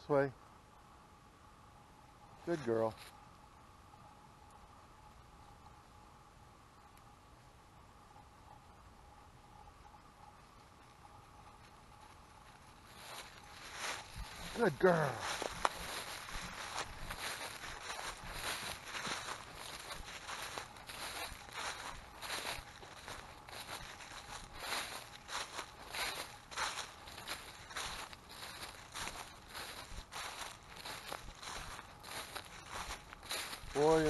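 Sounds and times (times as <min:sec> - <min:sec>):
footsteps crunching dry leaves: 0:12.4 - 0:34.0.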